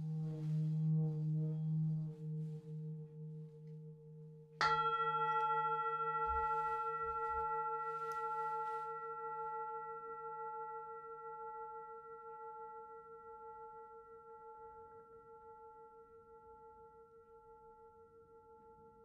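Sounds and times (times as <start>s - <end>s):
singing bowl ringing: 0.0s - 19.0s
mallet striking singing bowl: 4.6s - 8.6s.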